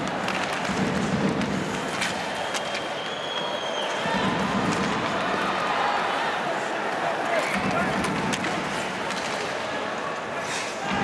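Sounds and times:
skates scraping on ice: 0:00.0 - 0:03.5
arena crowd noise: 0:00.0 - 0:11.0
sticks and puck clacking: 0:00.0 - 0:11.0.

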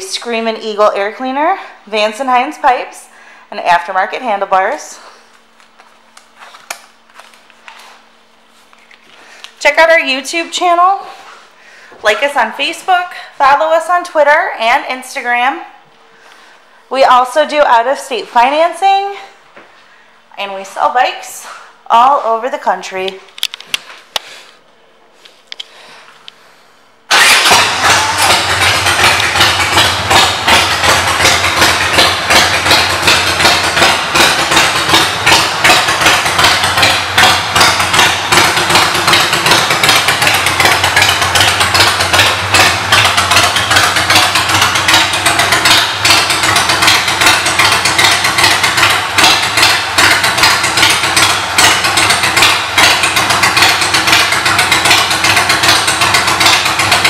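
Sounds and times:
motorcycle engine idling: 0:27.1 - 0:57.0.

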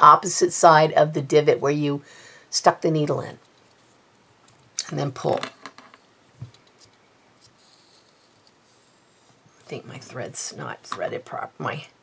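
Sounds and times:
thread rustling through paper: 0:06.3 - 0:09.7.

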